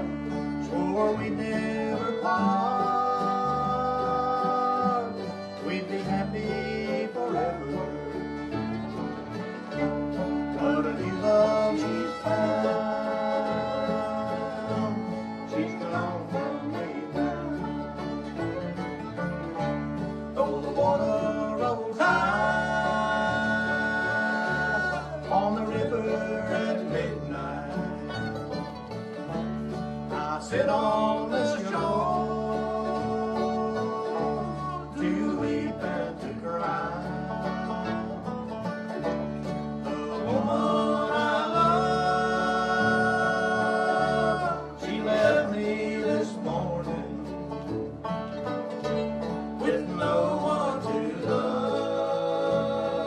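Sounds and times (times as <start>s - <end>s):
bluegrass band playing: 0.0s - 53.0s.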